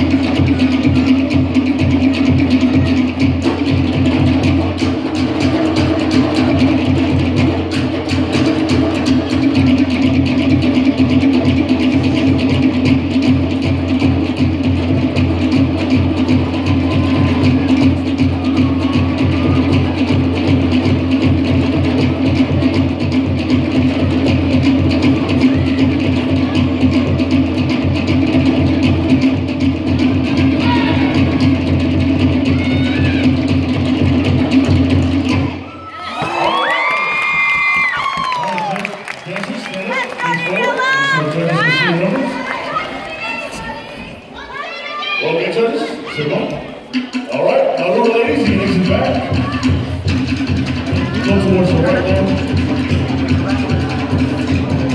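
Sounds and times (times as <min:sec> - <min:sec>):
fast drumming: 0:00.0 - 0:54.9
crowd cheering and whooping: 0:16.3 - 0:20.1, 0:35.6 - 0:45.2.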